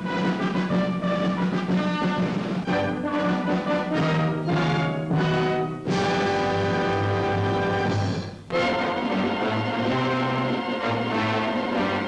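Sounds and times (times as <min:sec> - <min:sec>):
brass-led orchestral theme music: 0:00.0 - 0:12.0.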